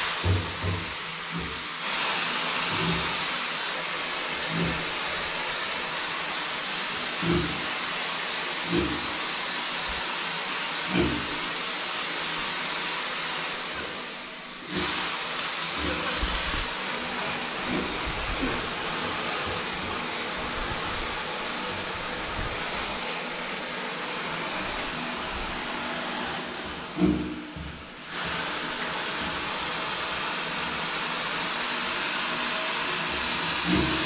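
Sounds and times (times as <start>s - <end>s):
shower spraying water on tiles: 0.0s - 34.0s.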